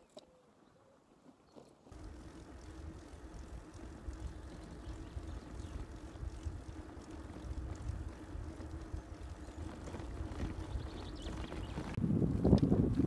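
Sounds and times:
tyres rolling on asphalt: 1.1 - 13.0
wind buffeting microphone: 1.9 - 13.0.

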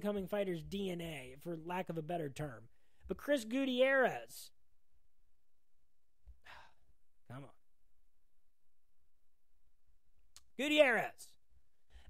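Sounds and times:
quiet breath: 2.7 - 3.1, 6.3 - 7.0, 11.8 - 12.0.

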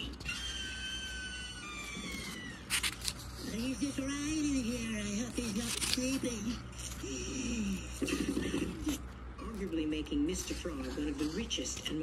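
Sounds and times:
paper page turning: 1.9 - 7.1
paper rustle: 2.0 - 7.0.

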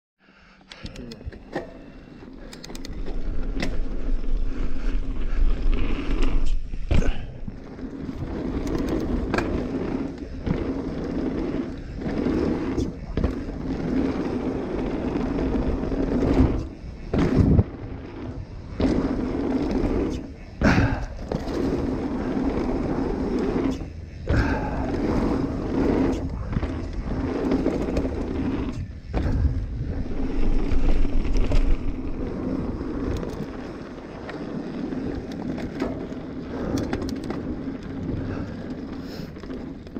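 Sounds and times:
bike knocking and rattling: 1.0 - 39.9
bike tyres rumbling over dirt: 1.8 - 39.9.

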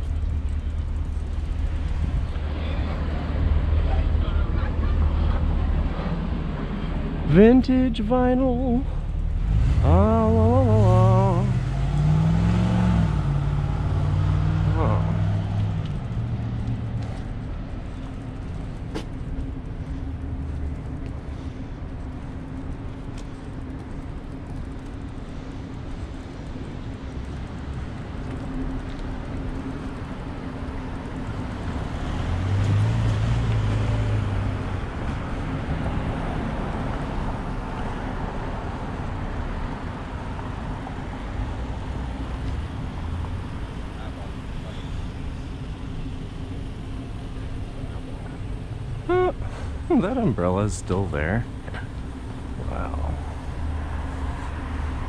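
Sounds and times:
constant low hum: 0.0 - 55.0
street traffic rumble: 0.0 - 55.0
motor vehicle passing: 8.9 - 26.2, 27.0 - 55.0.

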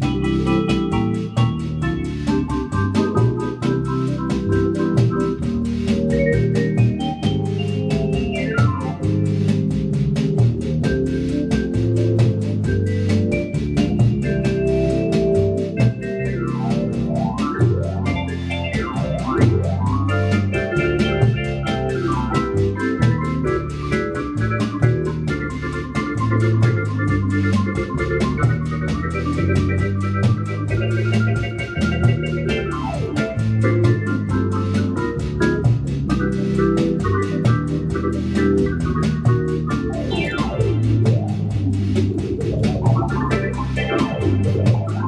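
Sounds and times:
fast ticking rhythm: 0.0 - 45.0
organ playing bossa nova: 0.0 - 45.0.

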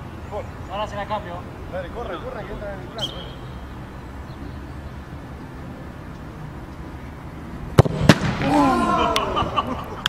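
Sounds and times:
football kicked with a thump: 7.8 - 8.4
ball hitting goal: 7.8 - 8.5
voices shouting: 8.4 - 9.6.

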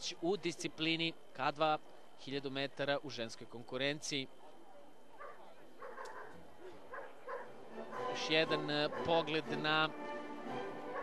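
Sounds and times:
distant voices: 0.0 - 9.6.

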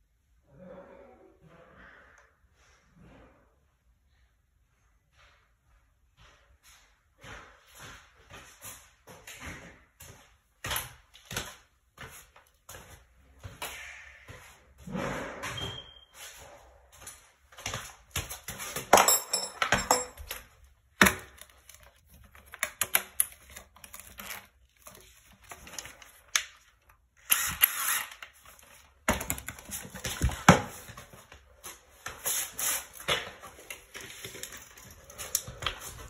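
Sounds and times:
tools knocking and clattering: 18.7 - 24.0.

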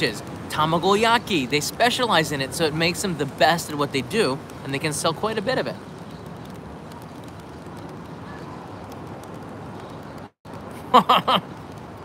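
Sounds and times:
light rain pattering: 0.0 - 12.0.

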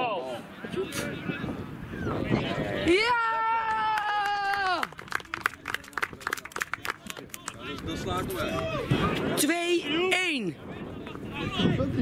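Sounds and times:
spectators clapping: 3.6 - 8.7.

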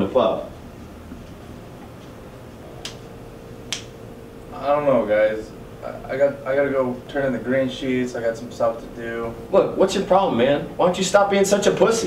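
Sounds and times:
finger snaps: 2.8 - 3.0, 3.7 - 4.0.

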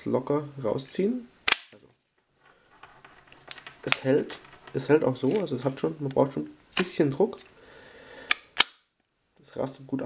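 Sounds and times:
soft rustling of knife sheath: 1.9 - 6.3.

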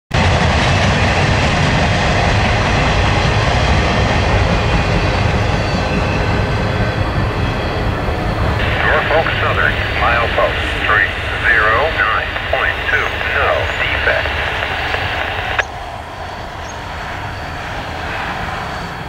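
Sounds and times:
freight train rolling past: 0.2 - 15.0, 15.6 - 19.0
synthesized voice over radio: 8.6 - 15.6.

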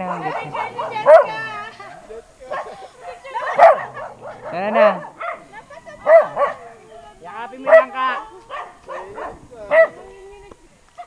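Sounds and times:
dog barking: 0.0 - 1.5, 2.5 - 6.7, 7.6 - 10.0.

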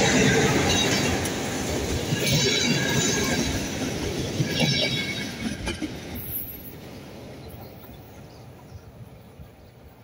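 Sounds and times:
train coaches rolling on track: 0.0 - 10.0.

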